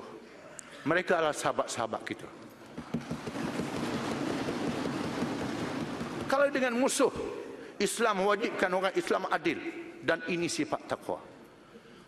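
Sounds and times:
people thumping desks: 0:02.8 - 0:06.5.

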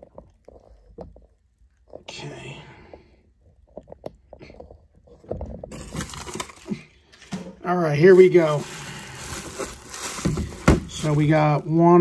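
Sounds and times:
breathy whispered vocal sound: 0:02.0 - 0:03.5.

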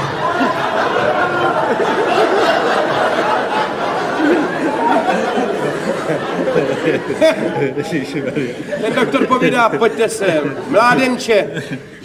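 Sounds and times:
audience chatter: 0:00.0 - 0:12.0
audience laughter: 0:00.0 - 0:12.0.

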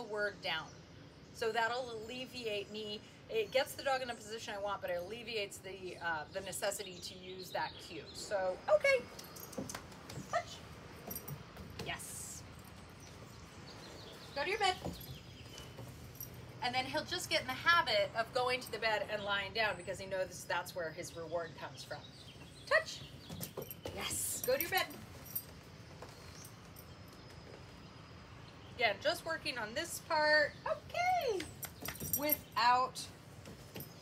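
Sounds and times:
footsteps on wooden deck: 0:09.3 - 0:16.3.

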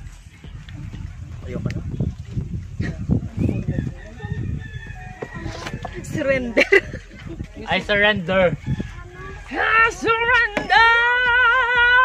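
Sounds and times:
rooster crowing: 0:03.6 - 0:06.0.

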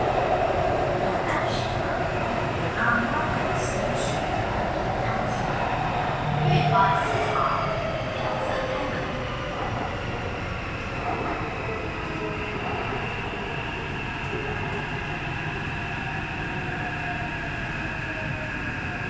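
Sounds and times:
train high whine: 0:00.0 - 0:19.0.

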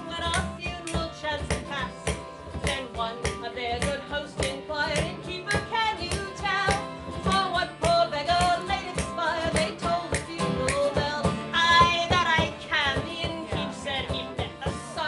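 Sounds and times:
person singing: 0:00.0 - 0:15.0
strummed stringed instrument: 0:00.0 - 0:15.0.

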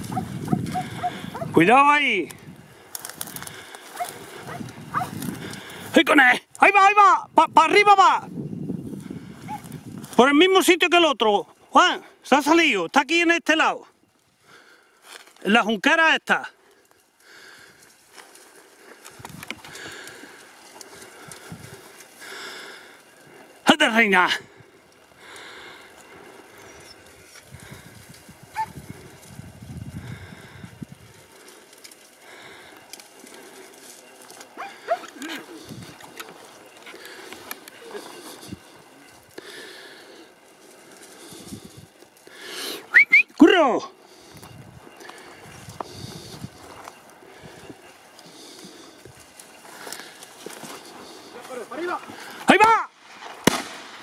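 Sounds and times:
small rustles: 0:00.0 - 0:06.7, 0:08.7 - 0:10.4, 0:13.8 - 0:15.9, 0:16.5 - 0:53.6.

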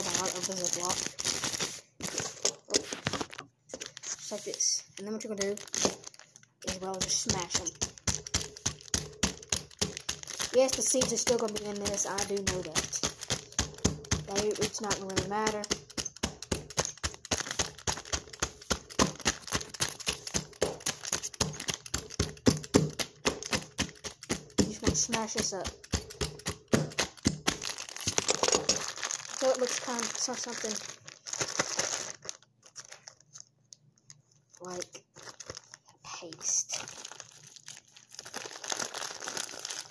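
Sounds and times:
plastic bag crinkling: 0:00.0 - 0:39.9.

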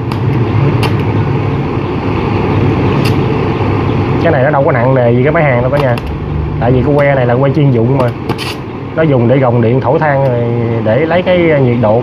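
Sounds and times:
welding arc crackling and buzzing: 0:00.0 - 0:07.2, 0:08.0 - 0:08.9
steady low hum: 0:00.0 - 0:12.0.

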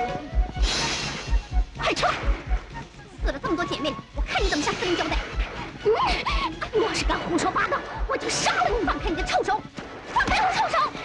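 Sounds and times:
film soundtrack: 0:00.0 - 0:11.0.

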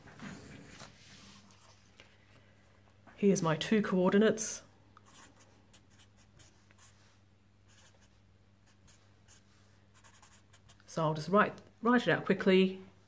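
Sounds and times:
marker writing on paper: 0:05.1 - 0:07.0, 0:07.7 - 0:08.1, 0:10.0 - 0:10.8.

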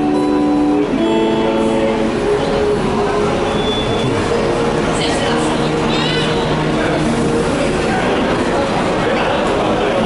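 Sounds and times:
rumbling vehicle noise: 0:00.0 - 0:10.0.

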